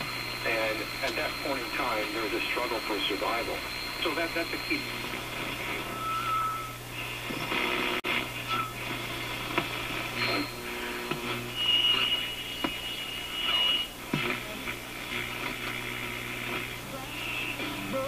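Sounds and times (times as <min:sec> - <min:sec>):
radio static: 0:00.0 - 0:18.0
radio stations and voices: 0:00.0 - 0:18.0
radio whistling tones: 0:00.0 - 0:18.0
steady low hum: 0:00.0 - 0:18.0.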